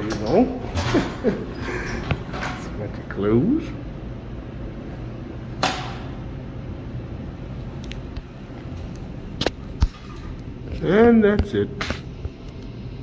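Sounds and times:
elevator doors sliding shut: 0.0 - 2.9
steady low hum: 0.0 - 13.0.

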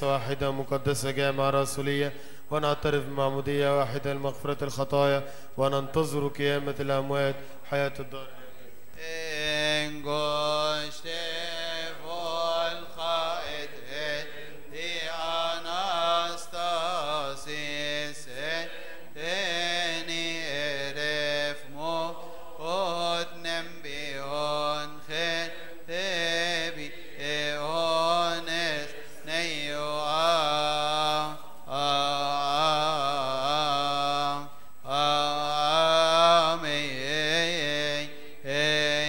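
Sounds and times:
man chanting a hymn solo: 0.0 - 39.0.

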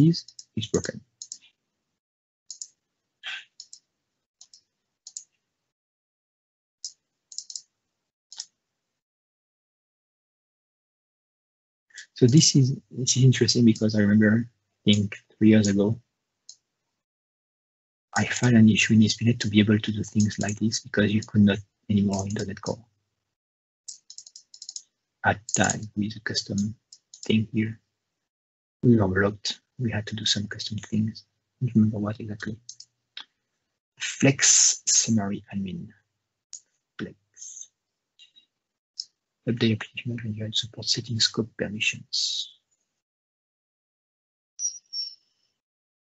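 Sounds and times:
computer mouse clicks: 0.2 - 1.5, 2.5 - 5.4, 6.8 - 7.7, 8.3 - 8.5, 20.0 - 20.6, 23.9 - 25.8, 32.7 - 32.9
computer keyboard clicks: 7.3 - 7.6, 23.9 - 24.8.

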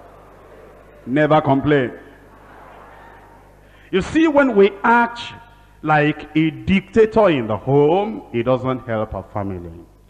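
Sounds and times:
background hiss: 0.0 - 10.0
faint hum: 0.0 - 10.0
man speaking: 3.9 - 9.9.

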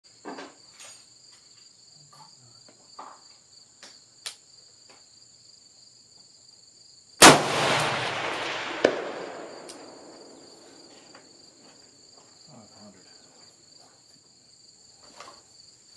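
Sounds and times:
high insect chorus: 0.0 - 15.9
rifle shot with rolling echo: 7.2 - 10.9.

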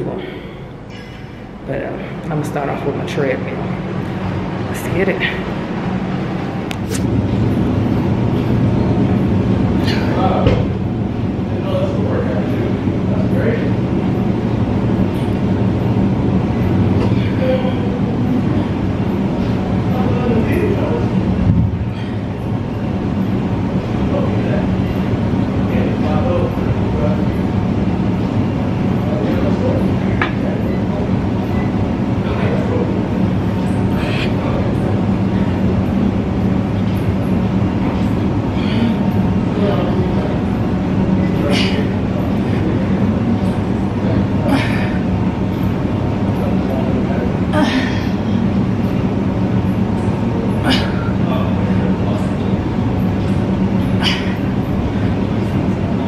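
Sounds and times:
running machines humming: 0.0 - 56.0
faint voices: 8.0 - 56.0.

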